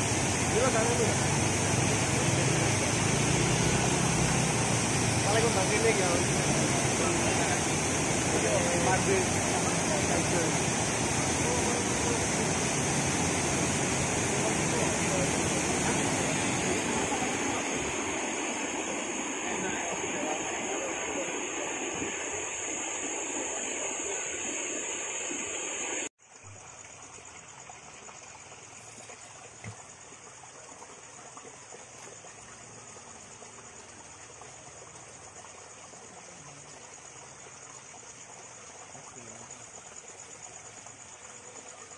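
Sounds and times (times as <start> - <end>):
floodwater rushing: 0.0 - 41.9
shallow floodwater washing: 0.0 - 41.9.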